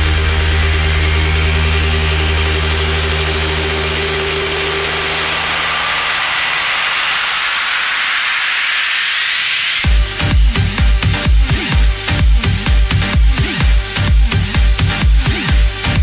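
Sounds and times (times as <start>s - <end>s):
low bass drone: 0.0s - 9.0s, 9.8s - 16.0s
rising white-noise sweep: 0.0s - 16.0s.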